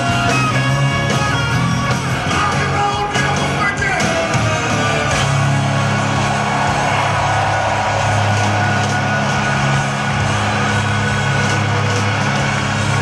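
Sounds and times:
rock band holding a chord: 0.0s - 13.0s
crowd cheering and whooping: 4.2s - 13.0s.

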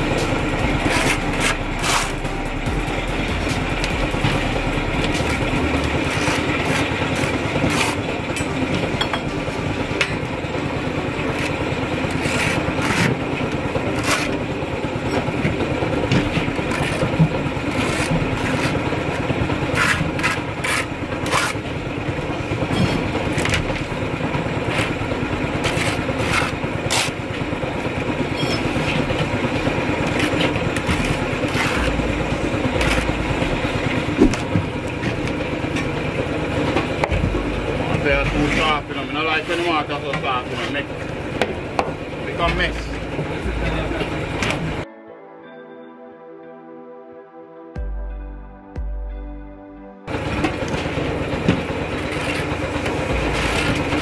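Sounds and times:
trowel scraping mortar: 0.0s - 2.3s, 5.0s - 8.1s, 11.3s - 13.3s, 13.9s - 14.4s, 16.4s - 21.7s, 24.6s - 27.3s, 29.8s - 33.5s, 38.4s - 40.8s, 52.0s - 54.0s
engine droning: 0.0s - 44.9s, 47.8s - 54.0s.

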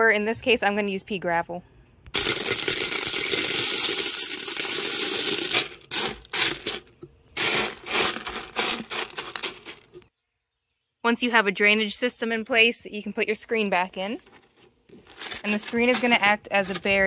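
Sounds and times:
gravel pouring onto glass: 2.2s - 9.8s.

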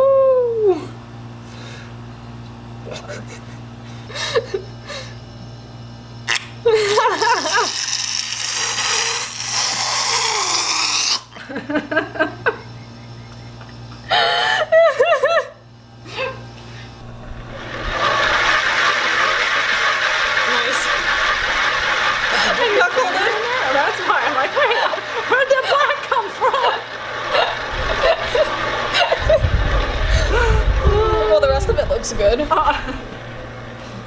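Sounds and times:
women laughing: 2.8s - 5.1s, 6.6s - 7.8s, 11.3s - 12.8s, 14.1s - 16.5s, 17.3s - 31.5s, 32.3s - 33.2s
spinner whirring: 7.0s - 11.4s, 16.6s - 34.0s.

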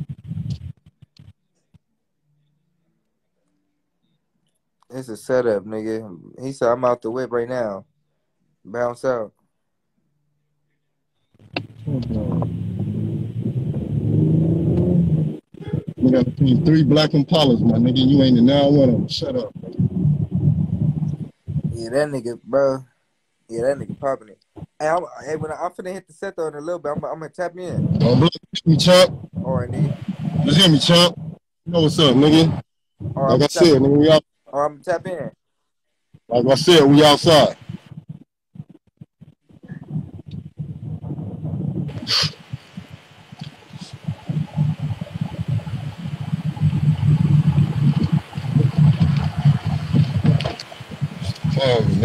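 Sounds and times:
wind noise on microphone: 0.0s - 1.3s, 11.4s - 22.2s, 23.5s - 25.7s, 26.9s - 34.2s, 36.3s - 52.0s
car engine humming: 11.6s - 16.7s.

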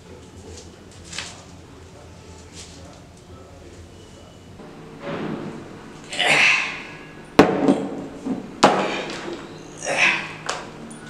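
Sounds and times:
muffled vocal noise: 0.0s - 7.3s, 8.1s - 11.0s
rustling: 0.2s - 11.0s
sharp knocks: 4.6s - 9.5s.

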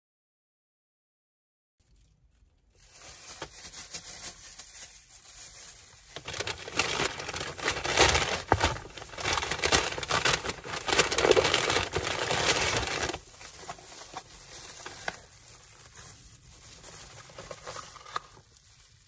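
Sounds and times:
plastic gloves crinkling: 1.8s - 19.0s
paper wrapping rustling: 1.9s - 19.0s.

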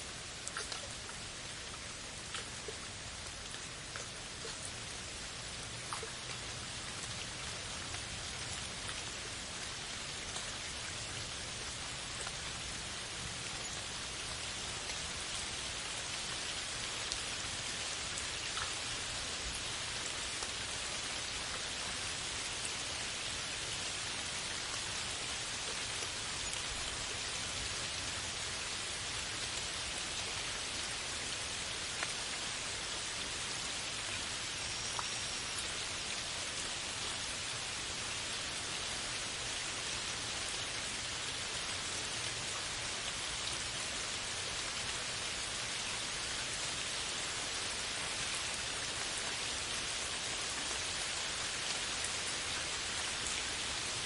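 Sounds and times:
steady rain hiss: 0.0s - 54.0s.

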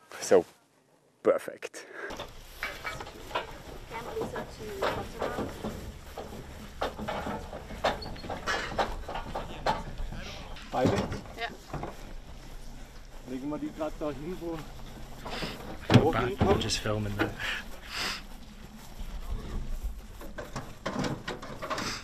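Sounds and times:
people talking and calling out: 1.8s - 20.5s
trailer knocking and rattling: 2.1s - 22.0s.

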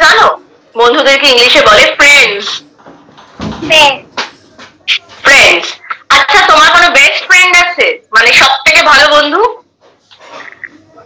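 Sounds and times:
woman talking: 0.0s - 2.6s, 3.6s - 4.1s, 4.9s - 9.7s.

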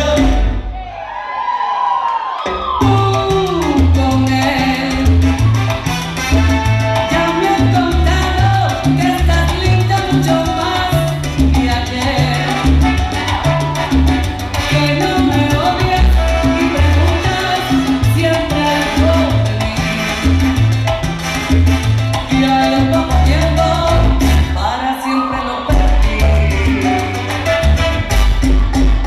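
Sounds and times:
salsa band music: 0.0s - 1.2s, 2.2s - 29.0s.

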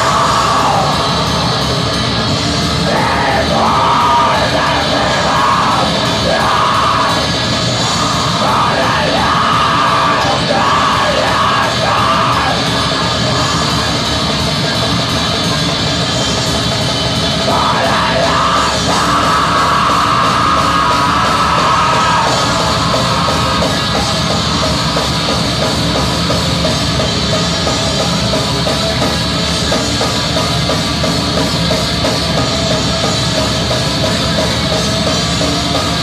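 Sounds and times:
harsh screamed vocals: 0.0s - 14.5s, 17.2s - 28.8s
distorted electric guitars: 0.0s - 36.0s
drum kit: 0.0s - 36.0s.

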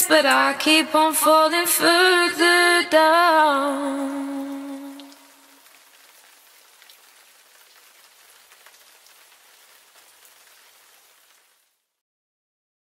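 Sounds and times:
rain pattering: 3.0s - 12.0s.

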